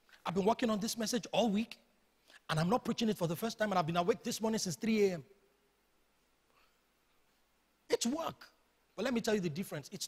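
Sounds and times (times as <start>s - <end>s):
man speaking: 0.2s - 5.3s, 7.9s - 10.0s.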